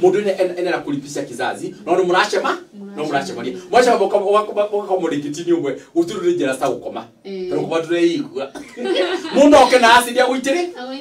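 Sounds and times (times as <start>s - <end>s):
person talking: 1.5s - 4.1s, 7.3s - 7.8s.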